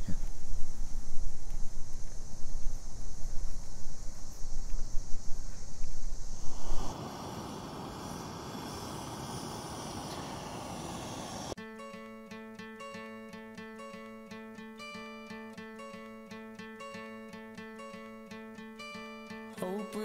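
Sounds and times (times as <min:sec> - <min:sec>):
steady hiss: 0:00.0 - 0:11.6
strummed acoustic guitar: 0:11.6 - 0:20.0.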